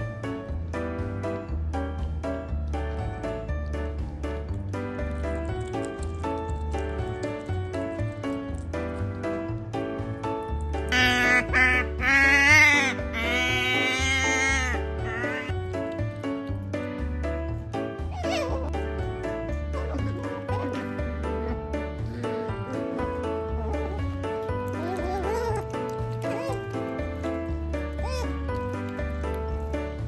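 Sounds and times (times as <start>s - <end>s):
background music with steady beat: 0.0s - 30.0s
otter begging calls: 10.9s - 15.5s.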